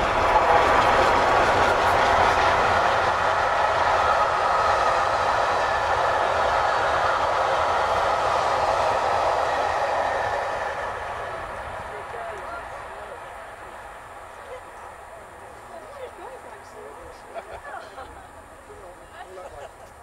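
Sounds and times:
train wheels roaring on rails: 0:00.0 - 0:20.0.

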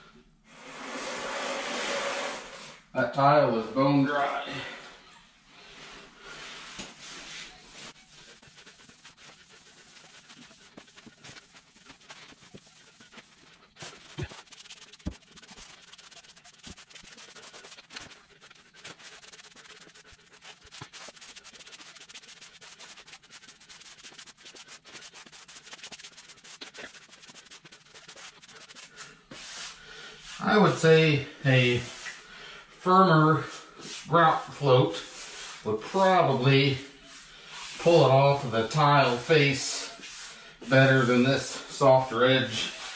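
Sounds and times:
grout float scraping tiles: 0:00.5 - 0:02.9, 0:03.5 - 0:42.9.

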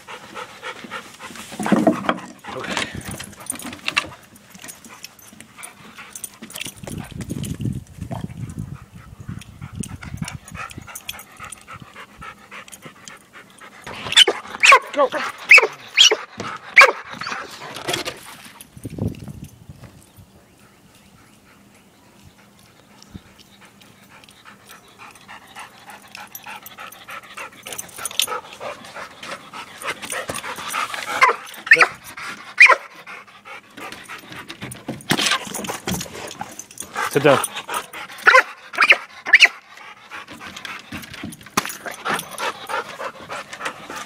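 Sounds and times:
dog panting: 0:00.0 - 0:07.3, 0:08.1 - 0:18.6, 0:20.6 - 0:44.0.

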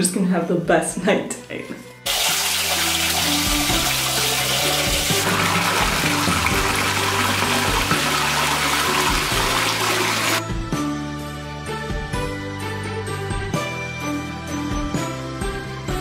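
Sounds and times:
background music: 0:00.0 - 0:16.0
water pouring into bathtub: 0:02.1 - 0:10.4.

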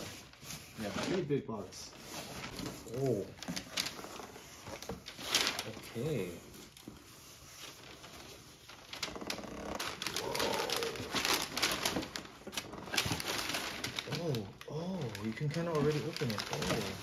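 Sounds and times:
plastic wrapping rustling: 0:00.0 - 0:17.0.

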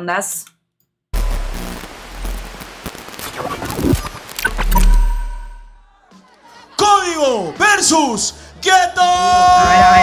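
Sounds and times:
deep bass rumble: 0:01.2 - 0:02.8
noisy whoosh: 0:01.2 - 0:05.8
sharp crackling clicks: 0:01.6 - 0:05.1.

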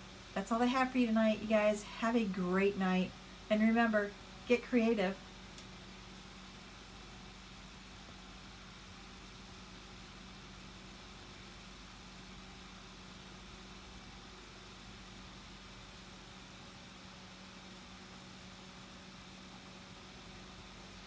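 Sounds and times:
low steady hum: 0:00.0 - 0:21.0
steady hiss: 0:00.0 - 0:21.0.

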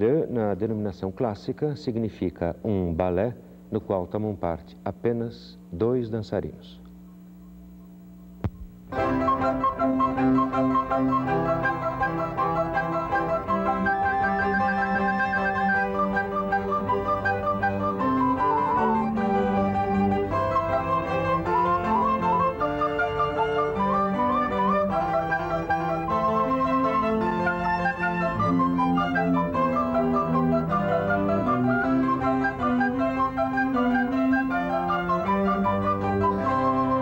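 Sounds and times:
electrical mains hum: 0:00.0 - 0:37.0
music: 0:07.0 - 0:37.0.

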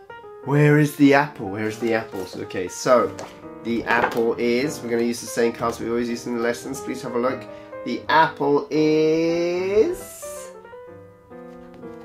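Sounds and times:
quiet music with held notes: 0:00.0 - 0:12.0.

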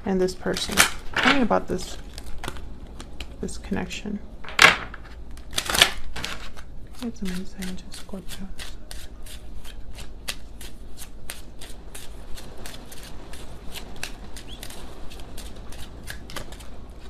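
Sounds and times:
cards being shuffled: 0:00.5 - 0:03.5, 0:04.9 - 0:17.0.

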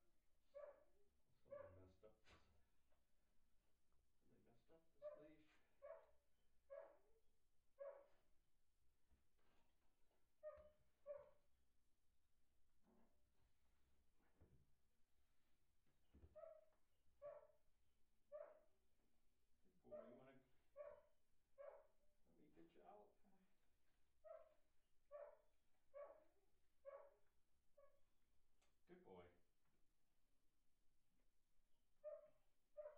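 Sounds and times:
faint dog barking: 0:00.6 - 0:02.4, 0:05.0 - 0:07.2, 0:07.8 - 0:08.2, 0:10.4 - 0:11.4, 0:16.3 - 0:17.6, 0:18.3 - 0:18.7, 0:19.8 - 0:22.0, 0:24.2 - 0:27.2, 0:32.0 - 0:32.9.

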